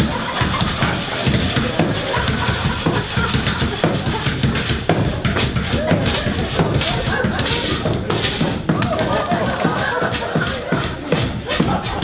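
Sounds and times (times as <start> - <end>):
wooden railing beaten: 0.0 - 12.0.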